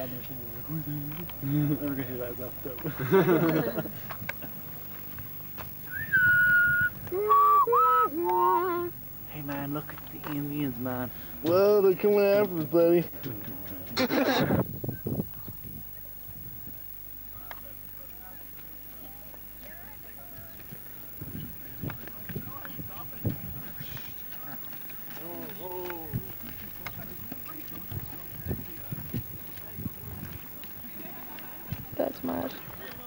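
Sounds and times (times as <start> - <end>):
distant voices: 0.0 - 33.0
donkey hooves clip-clopping on stones: 21.9 - 33.0.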